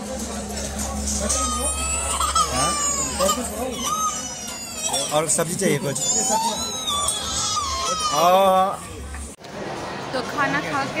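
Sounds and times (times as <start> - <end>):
baby crying: 1.2 - 8.8.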